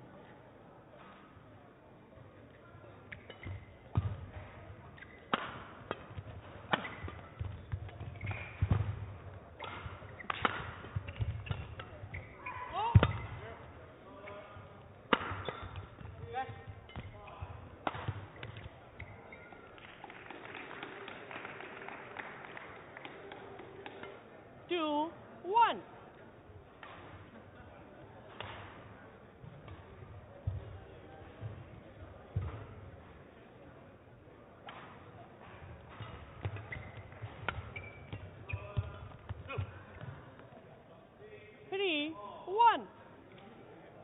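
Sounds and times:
shoes squeaking on court floor: 3.1 - 5.3, 5.9 - 20.4, 34.8 - 40.6
rackets striking shuttlecock: 3.1 - 13.4, 15.0 - 21.0, 28.4 - 28.8, 34.6 - 40.5.

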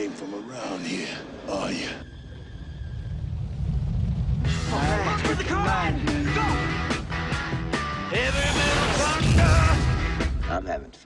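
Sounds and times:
deep rumble: 2.0 - 7.7.

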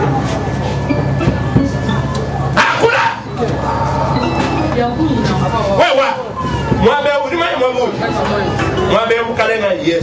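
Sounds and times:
voices crying out: 0.0 - 9.6.

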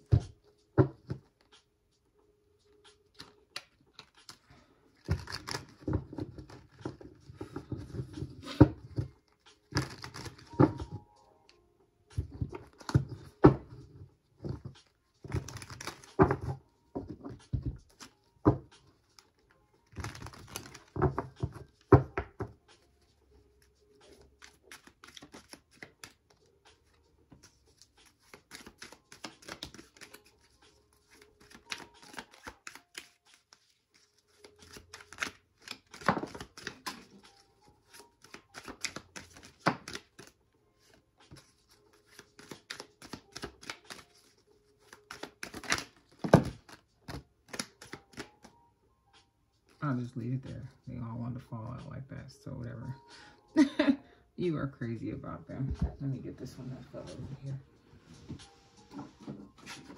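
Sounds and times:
index cards being shuffled: 2.9 - 11.0, 14.5 - 18.2, 19.0 - 22.5, 24.1 - 48.6, 58.2 - 59.9.

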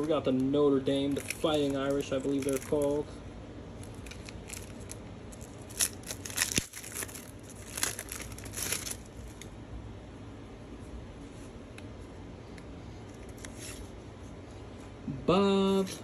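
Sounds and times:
foil wrapper tearing and crinkling: 0.0 - 3.0, 3.8 - 9.4.

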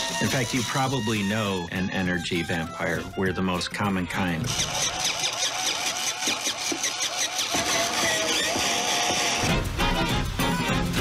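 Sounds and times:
background music: 0.0 - 4.6, 9.4 - 11.0.

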